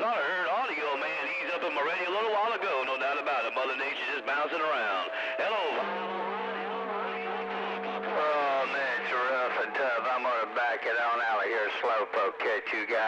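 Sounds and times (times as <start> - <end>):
voices over radio receiver: 0.0 - 13.0.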